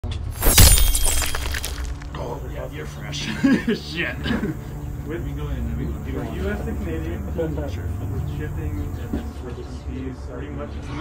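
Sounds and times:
loud crash: 0:00.3 - 0:02.1.

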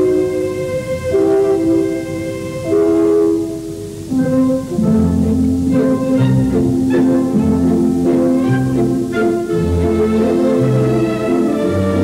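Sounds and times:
orchestral strings music: 0:00.0 - 0:12.0.

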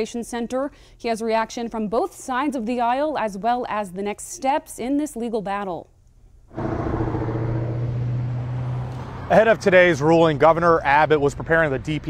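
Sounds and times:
low machine hum: 0:06.5 - 0:09.2.

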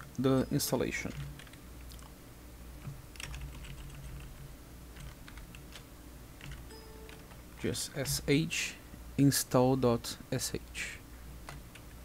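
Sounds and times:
computer keyboard typing: 0:01.0 - 0:02.1, 0:02.8 - 0:04.4, 0:05.0 - 0:05.8, 0:06.4 - 0:08.3.

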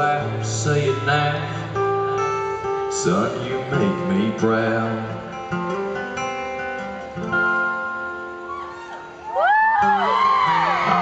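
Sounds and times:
acoustic guitar strumming chords: 0:00.0 - 0:08.5.

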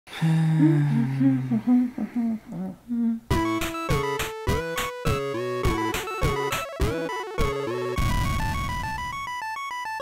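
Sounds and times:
low steady humming: 0:00.1 - 0:03.4.

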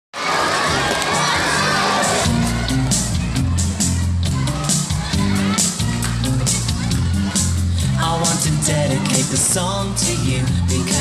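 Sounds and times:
children cheering and shouting: 0:00.2 - 0:11.0.

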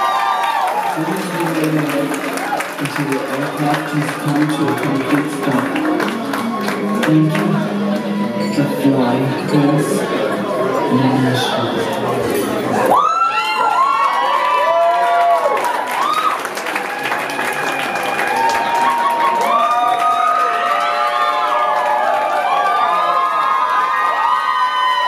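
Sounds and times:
audience cheering and whooping: 0:00.0 - 0:07.0, 0:12.8 - 0:25.0
clapping: 0:00.1 - 0:08.0, 0:13.8 - 0:25.0.

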